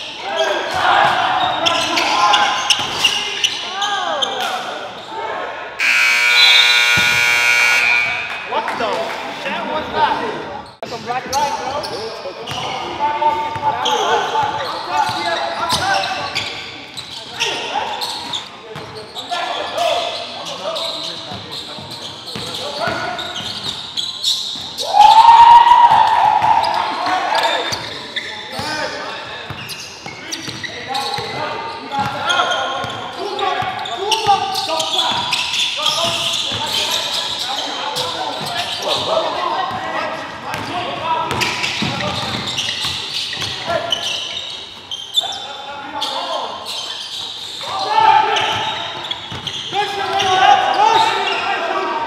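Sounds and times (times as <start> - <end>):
players' voices echoing: 0.0 - 52.0
buzzer: 5.8 - 8.4
loud shout: 24.8 - 27.6, 47.6 - 48.8.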